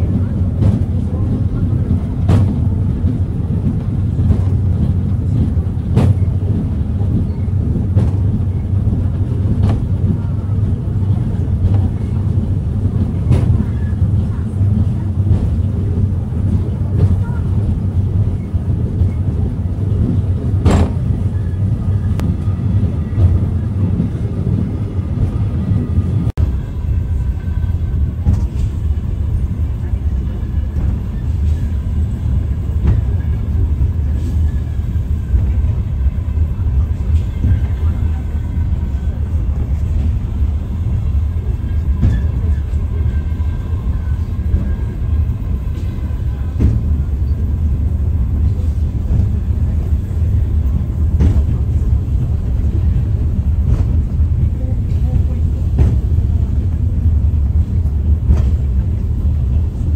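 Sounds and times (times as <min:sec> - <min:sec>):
funicular car rumbling: 0:00.0 - 0:59.9.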